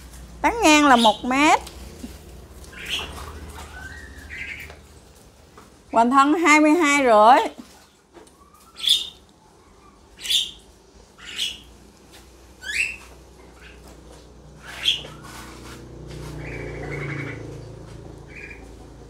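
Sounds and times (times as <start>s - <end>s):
bird chirping: 2.6s - 5.0s, 7.8s - 11.8s, 12.6s - 13.9s, 14.6s - 15.4s.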